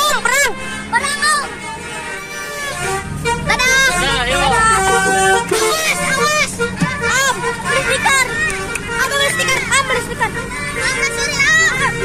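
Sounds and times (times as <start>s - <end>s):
children's excited voices: 0.0s - 12.0s
multi-tone horn playing a tune: 0.0s - 12.0s.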